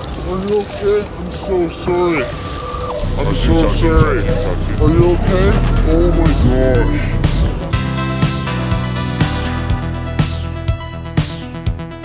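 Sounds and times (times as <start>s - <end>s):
chopped vocal line: 2.7s - 7.8s
steady deep bass: 3.0s - 12.0s.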